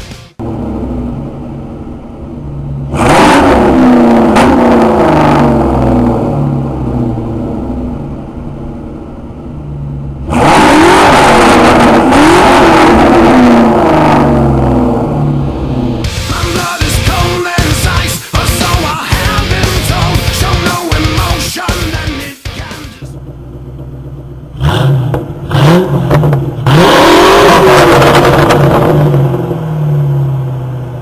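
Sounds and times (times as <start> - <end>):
car engine idling and revving: 0.0 - 31.0.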